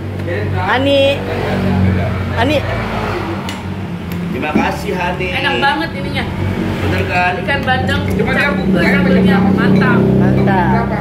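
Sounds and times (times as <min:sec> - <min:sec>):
motorbike passing by: 0:00.3 - 0:11.0.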